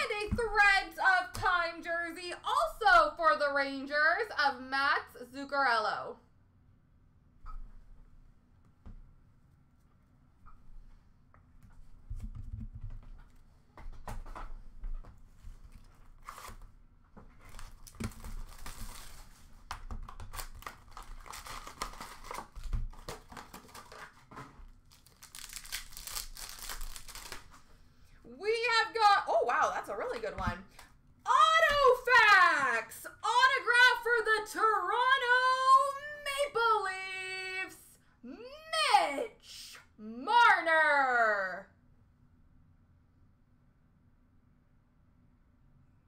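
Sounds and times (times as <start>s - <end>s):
packaging crinkling and tearing: 17.3s - 27.7s.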